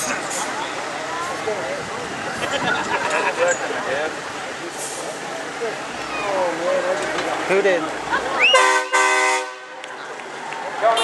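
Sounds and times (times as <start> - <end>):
truck air horn blasts: 8.5 - 9.8.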